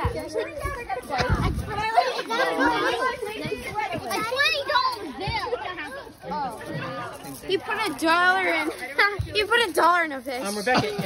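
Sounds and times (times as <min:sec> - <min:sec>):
excited chatter of children and adults: 0:00.0 - 0:11.0
laughter: 0:10.7 - 0:11.0.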